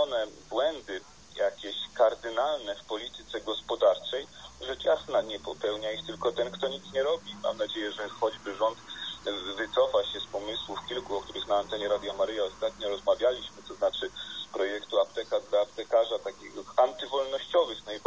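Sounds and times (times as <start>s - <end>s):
broadcast speech: 0.0s - 18.0s
high-pitched whine: 0.0s - 18.0s.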